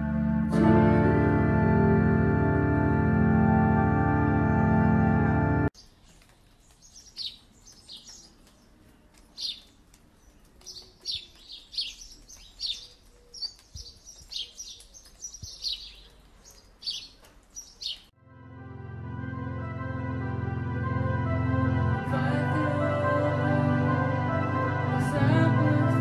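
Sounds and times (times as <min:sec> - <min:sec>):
music: 0:00.0 - 0:05.7, 0:18.2 - 0:26.0
small birds chirping: 0:05.8 - 0:18.1.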